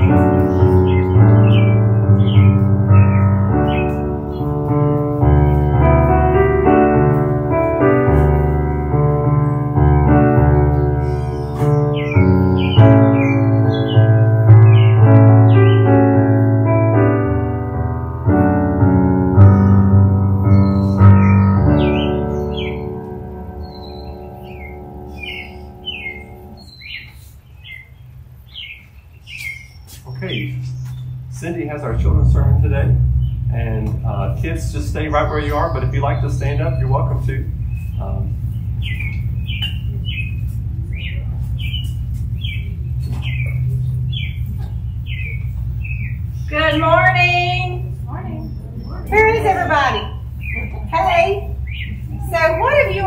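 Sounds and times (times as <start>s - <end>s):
birds chirping: 0.0s - 53.0s
piano chord: 0.0s - 53.0s
steady low hum: 0.0s - 53.0s.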